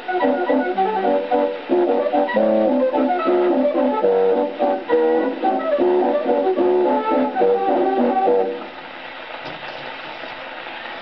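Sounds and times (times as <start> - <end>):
record surface hiss: 0.0 - 11.0.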